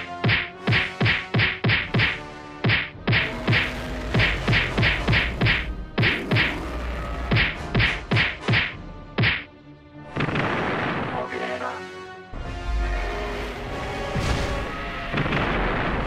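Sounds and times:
whacking punch sound effects: 0.2 - 6.6, 7.3 - 9.5.

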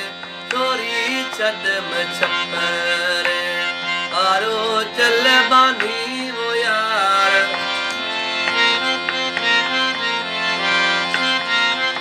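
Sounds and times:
harmonium melody: 0.0 - 12.0.

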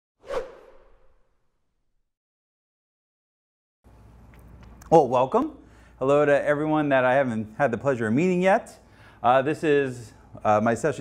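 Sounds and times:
quick swoosh: 0.2 - 1.4.

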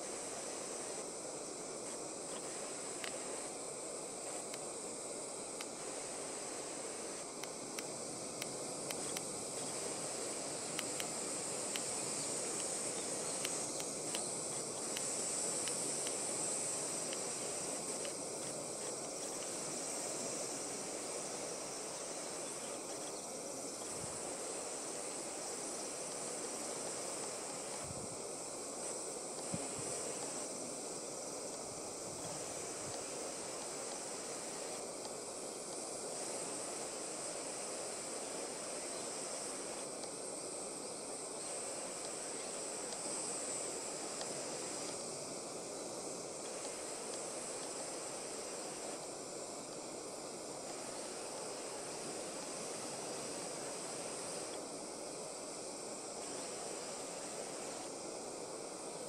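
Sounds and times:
faint outdoor hiss: 0.0 - 59.0
insects chirring: 0.0 - 59.0.

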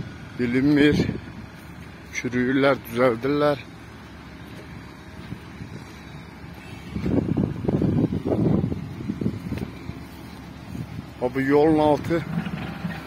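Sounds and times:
low background rumble: 0.0 - 13.0
wind buffeting microphone: 6.7 - 13.0.

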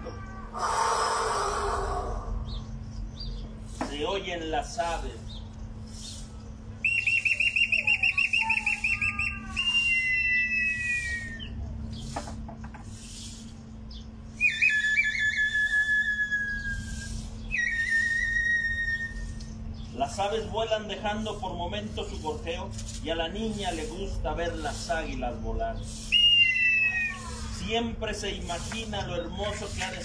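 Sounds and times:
bird-call whistle trilling: 6.8 - 11.6, 14.3 - 19.9, 26.0 - 27.4.

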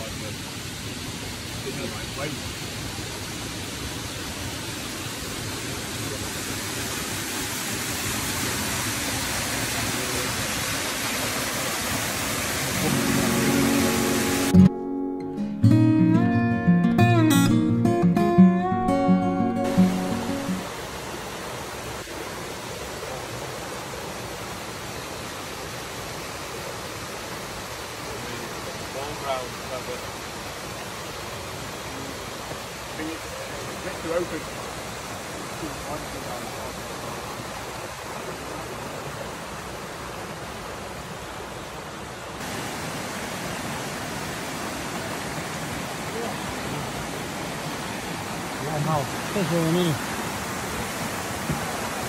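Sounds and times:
rocky stream and waterfall rushing: 0.0 - 14.8, 19.4 - 52.0
plucked string music: 12.8 - 20.6.

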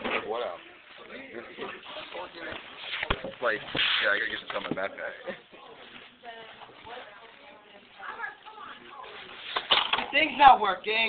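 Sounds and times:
soft voices talking: 0.5 - 11.0.

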